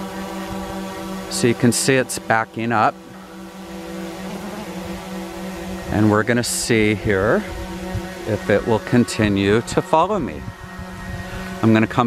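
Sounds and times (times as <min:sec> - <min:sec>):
drone propellers humming: 0:00.0 - 0:12.0.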